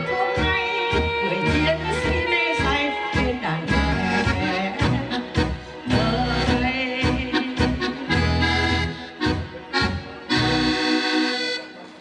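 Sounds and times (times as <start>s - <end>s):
woman singing: 0.0s - 8.3s
instrumental accompaniment: 0.0s - 12.0s.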